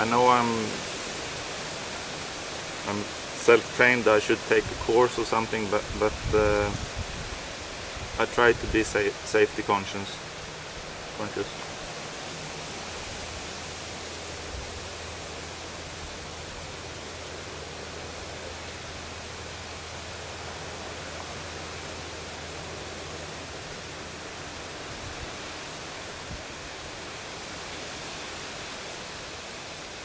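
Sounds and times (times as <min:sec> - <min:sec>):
outdoor background hiss: 0:00.0 - 0:30.0.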